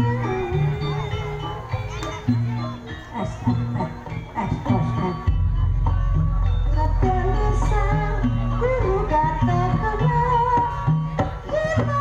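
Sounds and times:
traditional music with held notes: 0:00.0 - 0:12.0.

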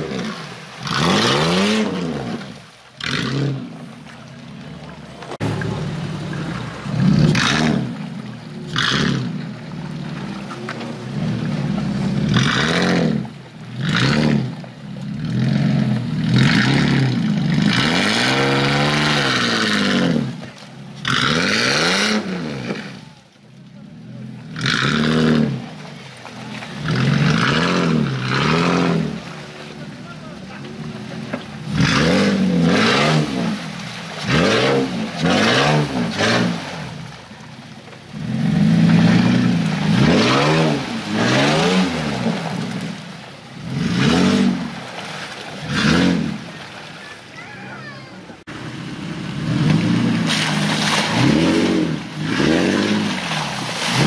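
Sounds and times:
engines revving: 0:00.0 - 0:54.0
tyres spinning in mud: 0:23.8 - 0:54.0.

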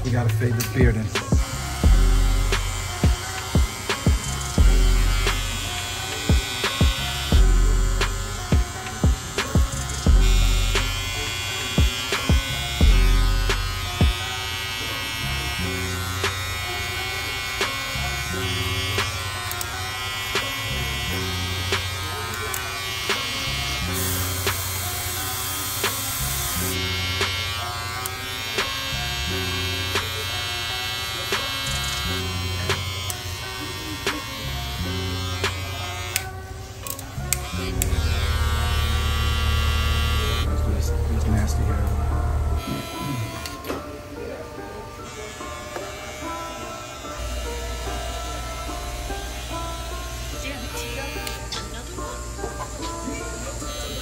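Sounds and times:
background music with a beat: 0:00.0 - 0:14.3, 0:18.8 - 0:22.0, 0:25.6 - 0:29.0, 0:32.6 - 0:33.1
electric hair clipper buzzing: 0:00.4 - 0:54.0
heavy bass hits: 0:37.7 - 0:42.6.

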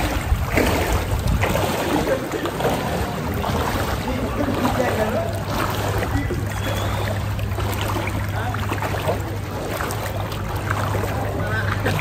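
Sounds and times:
water sloshing and splashing: 0:00.0 - 0:12.0.

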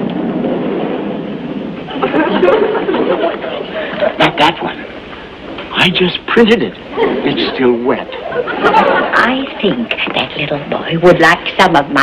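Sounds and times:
studio audience laughter: 0:01.9 - 0:04.4, 0:06.9 - 0:09.8.

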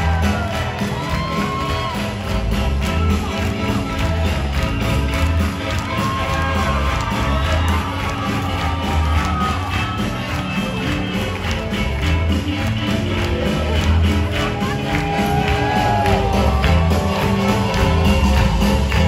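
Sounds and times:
audience cheering and clapping: 0:00.0 - 0:19.0
live band music: 0:00.0 - 0:19.0.

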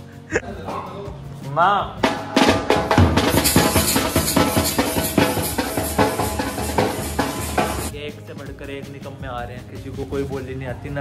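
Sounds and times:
dhol drum beaten with sticks: 0:02.0 - 0:07.9.

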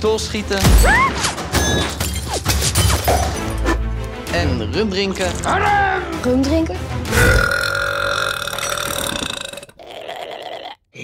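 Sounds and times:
loud belch: 0:07.1 - 0:10.9.

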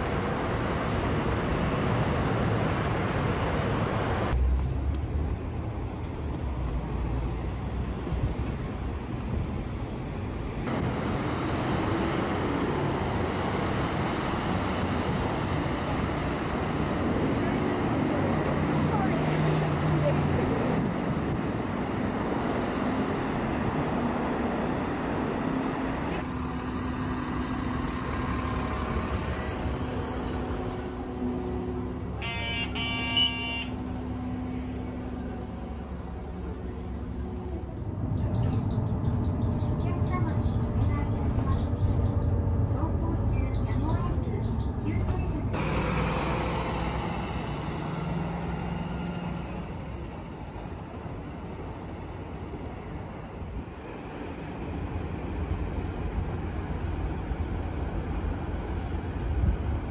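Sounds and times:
vehicles passing on street: 0:00.0 - 0:59.9.

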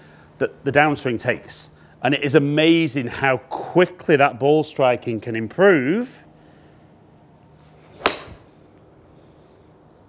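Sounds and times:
club swish: 0:07.6 - 0:08.5
golf club striking ball: 0:07.9 - 0:08.6.

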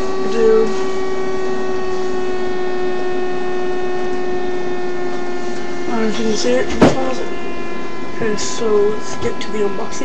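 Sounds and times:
steady pitched hum: 0:00.0 - 0:10.0.

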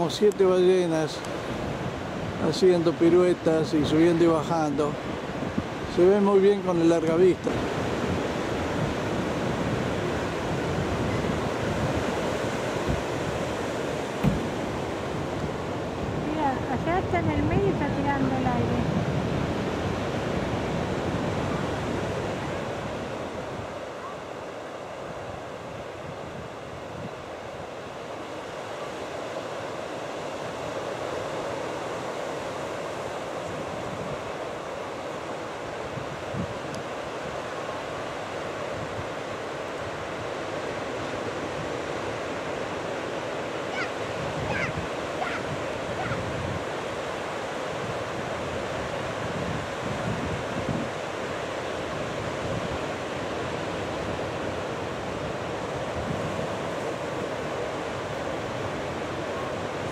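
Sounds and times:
ocean surf breaking: 0:00.0 - 0:59.9.

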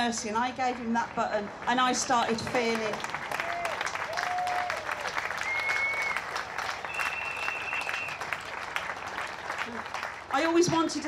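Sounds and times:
audience applauding: 0:01.6 - 0:10.4.

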